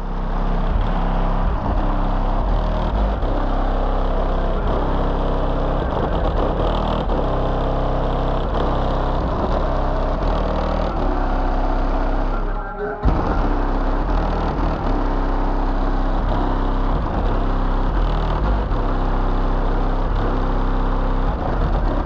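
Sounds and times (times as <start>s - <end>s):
distorted subwoofer bass notes: 0.0s - 22.0s.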